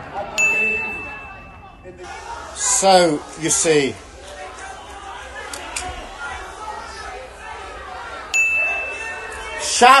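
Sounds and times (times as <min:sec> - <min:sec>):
faint voices: 0:00.0 - 0:10.0.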